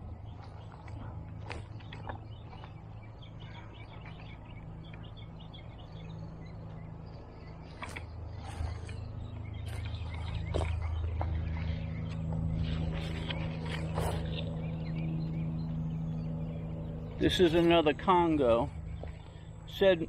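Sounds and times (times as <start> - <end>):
small birds chirping: 0.0 - 20.0
steady low hum: 0.0 - 20.0.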